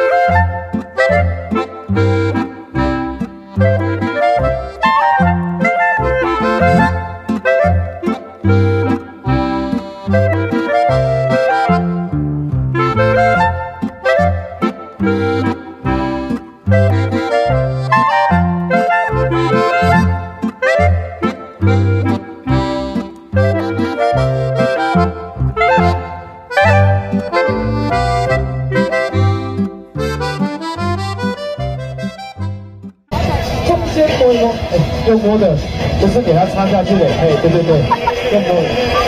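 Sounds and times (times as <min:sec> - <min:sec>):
instrumental music with bass beat: 0:00.0 - 0:33.8, 0:35.5 - 0:39.0.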